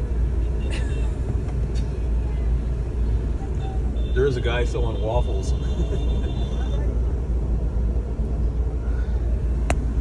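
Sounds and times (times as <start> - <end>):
car and traffic rumble: 0.0 - 10.0.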